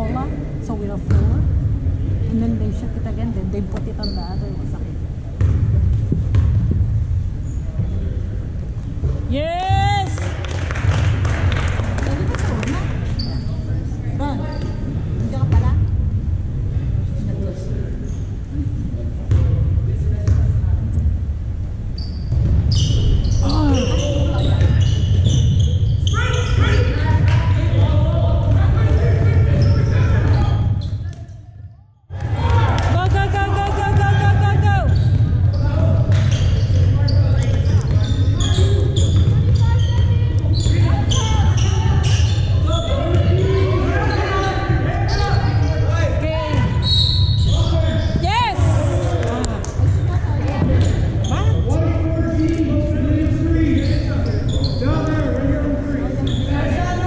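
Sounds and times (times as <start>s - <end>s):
voices echoing in hall: 0.0s - 6.3s, 7.1s - 57.0s
ball bouncing on hardwood court: 1.1s - 1.5s, 5.4s - 6.9s, 9.0s - 13.3s, 15.4s - 15.9s, 22.3s - 23.0s, 24.4s - 25.0s, 32.9s - 43.5s.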